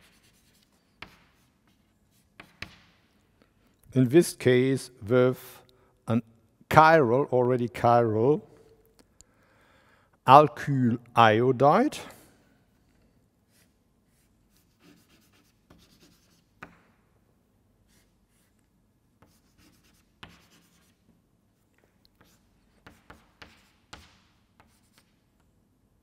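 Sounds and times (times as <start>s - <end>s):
chalk scratching on blackboard: 0.0s - 3.0s, 13.5s - 16.8s, 17.8s - 21.1s, 22.1s - 25.2s
chalk tapping on board: 0.0s - 3.0s, 14.5s - 16.9s, 19.2s - 21.0s, 22.1s - 25.2s.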